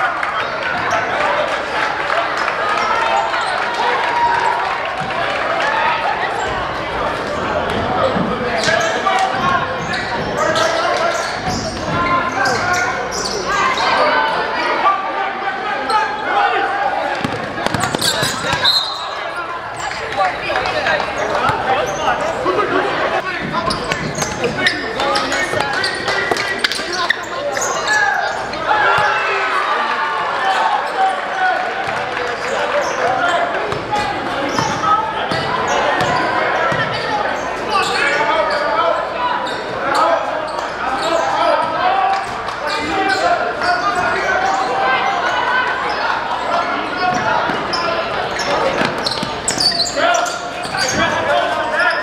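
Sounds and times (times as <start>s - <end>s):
crowd and players chattering: 0.0s - 52.0s.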